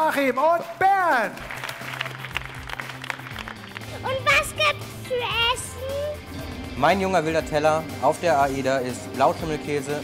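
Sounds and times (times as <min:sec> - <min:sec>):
background music with low notes: 0:00.0 - 0:10.0
audience applauding: 0:01.3 - 0:04.7.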